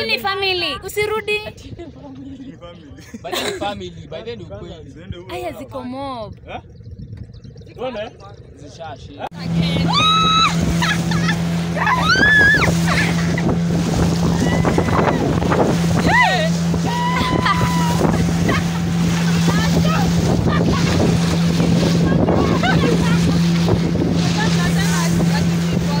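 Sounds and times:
outboard motor droning: 0.0 - 26.0
water rushing along hull: 0.0 - 26.0
wind on microphone: 3.9 - 26.0.

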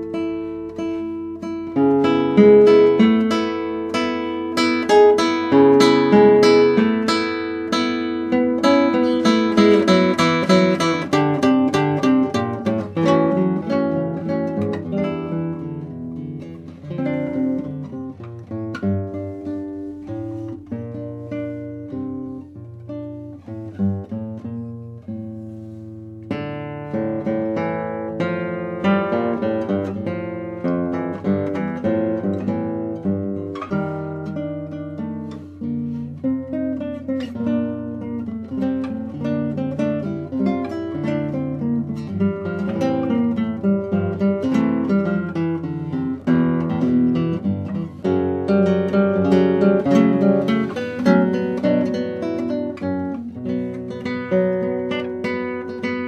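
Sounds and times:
solo classical guitar: 0.0 - 56.0.

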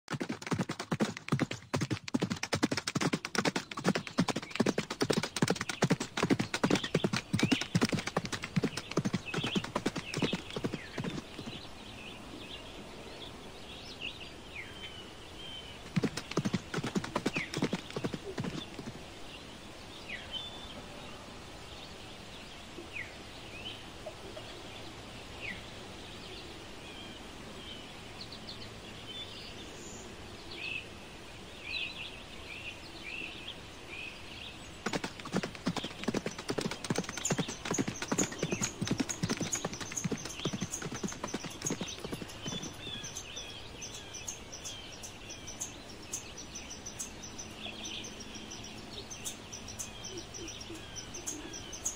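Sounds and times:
horse hooves galloping: 0.1 - 11.7, 15.8 - 19.0, 34.8 - 43.4
birds chirping: 0.1 - 30.8, 31.6 - 51.9.

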